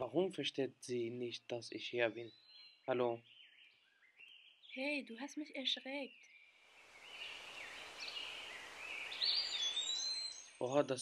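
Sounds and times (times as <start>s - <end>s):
birds chirping: 0.0s - 11.0s
outdoor background hiss: 0.0s - 11.0s.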